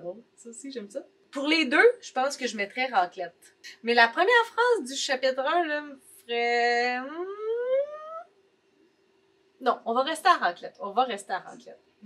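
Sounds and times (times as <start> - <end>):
woman's rising hesitation sound: 7.1 - 8.3.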